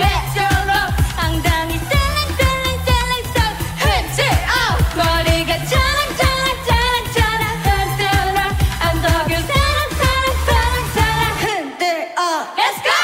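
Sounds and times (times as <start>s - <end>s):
electronic pop backing track: 0.0s - 13.0s
women singing chant-like line: 0.0s - 13.0s.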